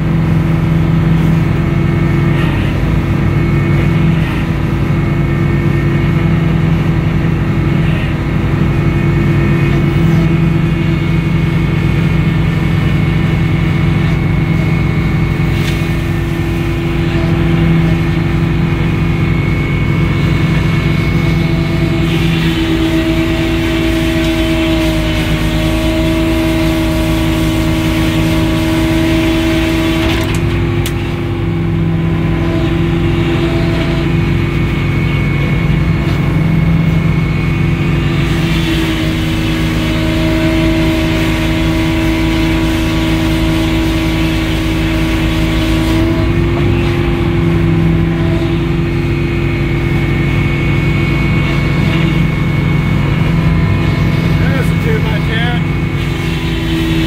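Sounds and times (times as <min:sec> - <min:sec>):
circular saw blade whine: 0:00.0 - 0:57.0
sawmill machine drone: 0:00.0 - 0:57.0.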